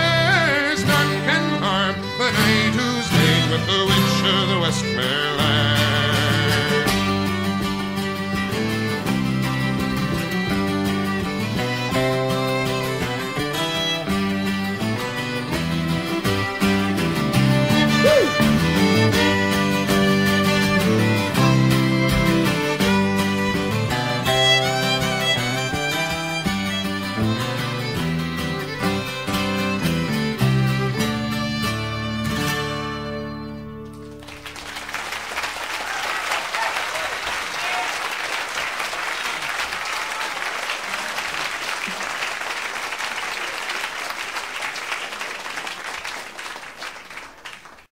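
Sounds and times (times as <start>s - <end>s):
folk music on fiddle and guitar: 0.0s - 34.9s
audience applauding: 6.8s - 15.5s, 17.7s - 27.3s, 33.8s - 47.9s.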